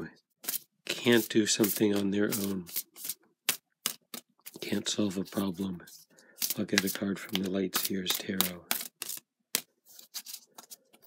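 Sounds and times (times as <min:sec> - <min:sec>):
cards being shuffled: 0:00.4 - 0:11.0
cards scraping: 0:00.4 - 0:11.0.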